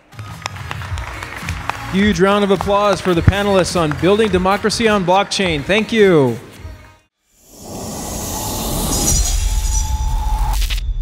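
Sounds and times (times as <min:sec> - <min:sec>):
rising shimmering noise swell: 0:07.4 - 0:10.8.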